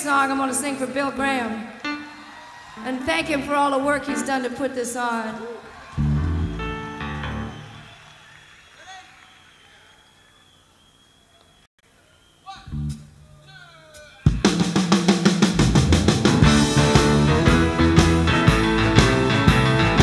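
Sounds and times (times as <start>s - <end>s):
live rock band playing: 6.0s - 7.8s, 14.2s - 20.0s.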